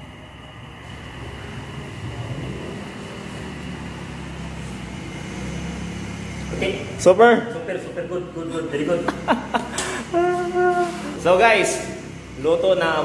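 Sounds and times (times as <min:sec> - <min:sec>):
low rumble and hum: 0:00.0 - 0:12.6
faint high whine: 0:00.0 - 0:13.0.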